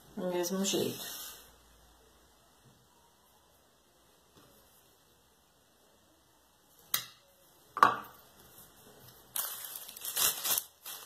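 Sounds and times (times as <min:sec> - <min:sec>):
plastic bag crinkling: 0:09.1 - 0:11.0.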